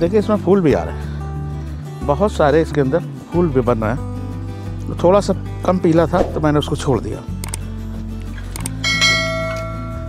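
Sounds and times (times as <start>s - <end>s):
soft background music: 0.0s - 10.0s
quick clicks: 7.4s - 7.7s, 8.5s - 8.8s
bright bell ding: 8.8s - 10.0s.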